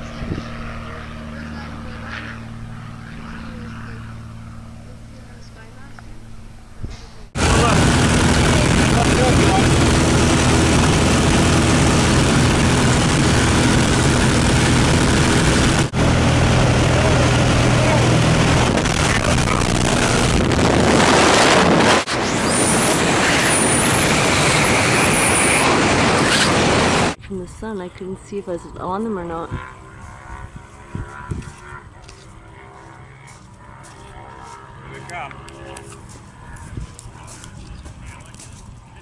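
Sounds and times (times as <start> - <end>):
wind rushing onto microphone: 0.0 - 0.7, 6.6 - 27.6, 29.3 - 31.6
plane engine and propeller droning: 0.0 - 39.0.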